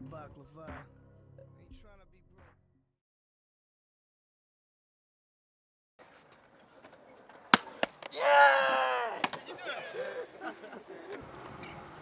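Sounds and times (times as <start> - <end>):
skateboard knock: 7.2 - 8.2
person shouting: 8.1 - 10.2.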